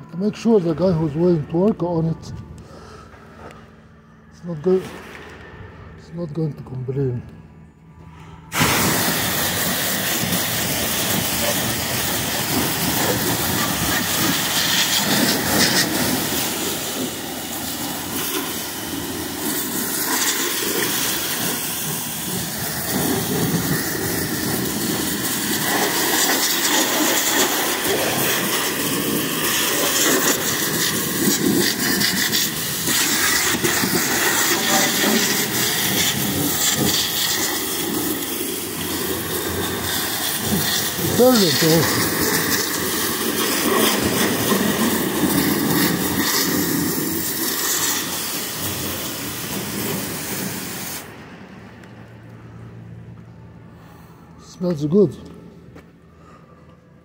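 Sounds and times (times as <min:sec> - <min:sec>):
pressure washer spraying water: 0:08.5 - 0:51.2.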